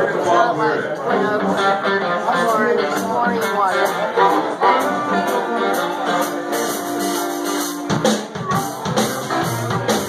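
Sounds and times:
blues-rock band playing: 0:01.0 - 0:10.0.

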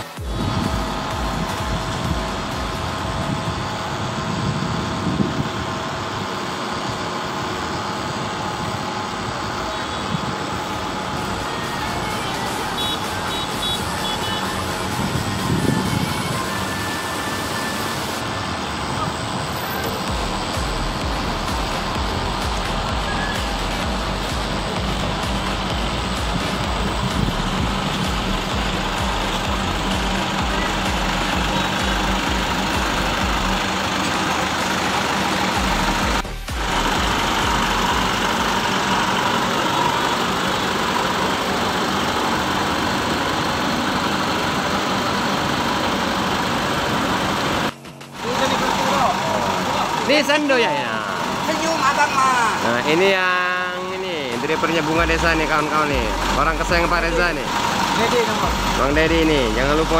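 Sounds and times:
diesel coach engines idling: 0:00.0 - 0:59.9
low pulsing rumble: 0:00.2 - 0:13.6, 0:18.2 - 0:40.4, 0:54.1 - 0:59.9.

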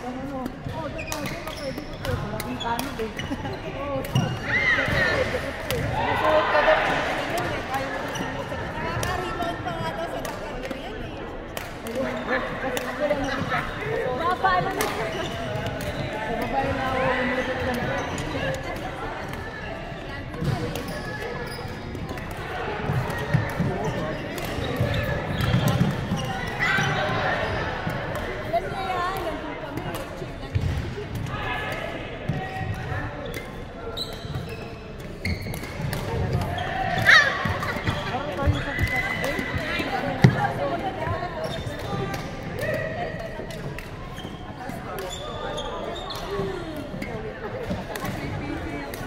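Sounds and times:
sneaker squeak: 0:00.1 - 0:05.9, 0:07.3 - 0:09.6, 0:12.0 - 0:22.3, 0:22.9 - 0:29.2, 0:32.3 - 0:48.8.

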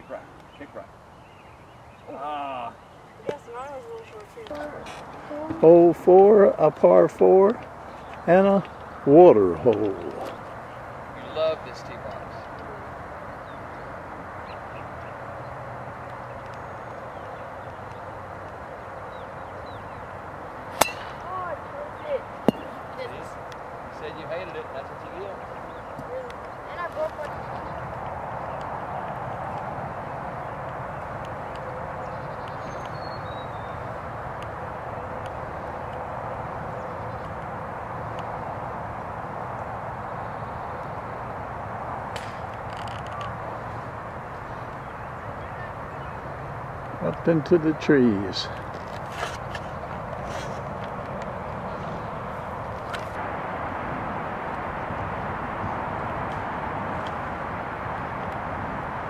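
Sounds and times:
outdoor background noise: 0:00.0 - 0:59.0
golf club striking ball: 0:20.7 - 0:21.5, 0:22.4 - 0:22.8.

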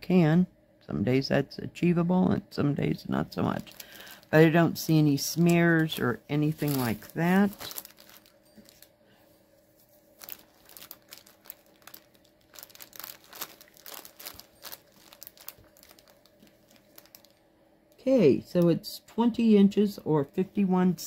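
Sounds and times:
canvas rustling and crinkling: 0:03.4 - 0:08.9, 0:09.7 - 0:17.4.

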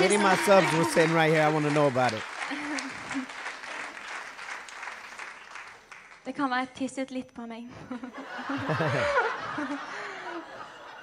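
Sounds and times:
audience laughing: 0:00.0 - 0:04.0, 0:07.9 - 0:11.0.

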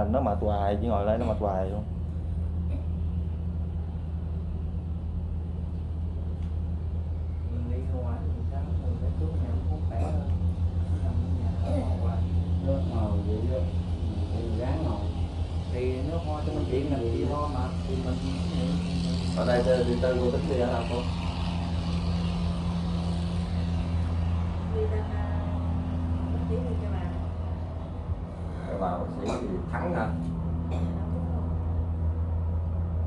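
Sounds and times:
steady low hum with flutter: 0:00.0 - 0:33.0.

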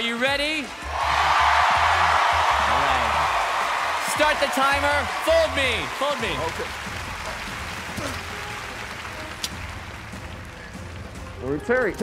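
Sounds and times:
audience applauding and cheering: 0:00.0 - 0:12.0.

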